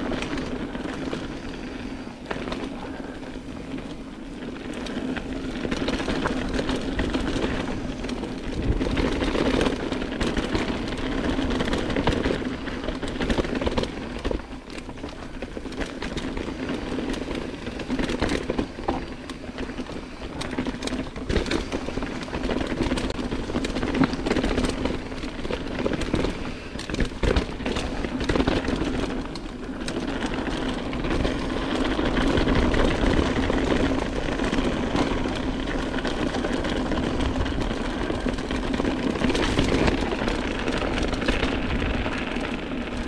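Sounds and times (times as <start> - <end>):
bike knocking and rattling: 0.0 - 43.0
bike tyres rolling over dirt: 0.0 - 43.0.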